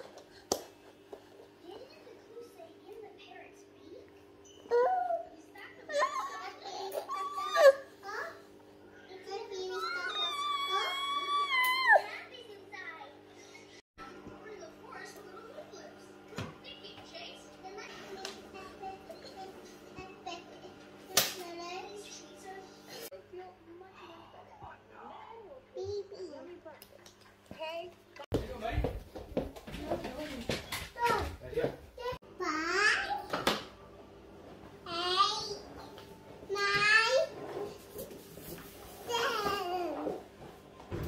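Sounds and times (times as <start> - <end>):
baby squealing: 7.1 - 7.8, 9.8 - 12.1.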